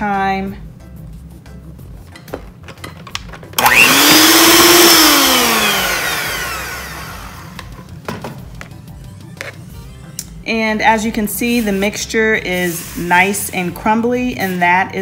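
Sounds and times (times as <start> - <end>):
electric hand mixer whining: 3.6 - 7.8.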